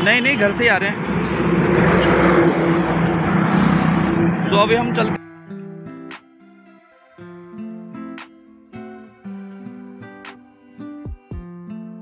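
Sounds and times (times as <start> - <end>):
traffic noise: 0.0 - 5.2
vehicle engine running: 0.4 - 5.2.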